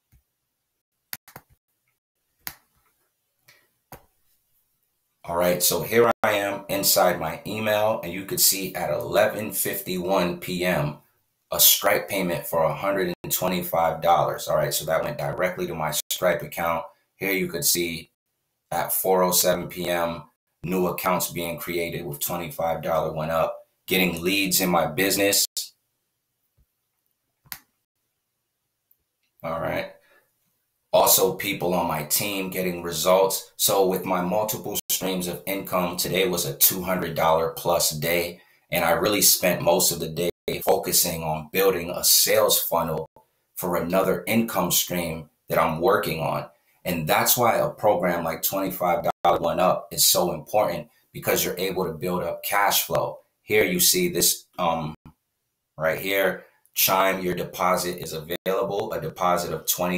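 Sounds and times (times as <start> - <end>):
computer mouse clicking: 1.2 - 1.6.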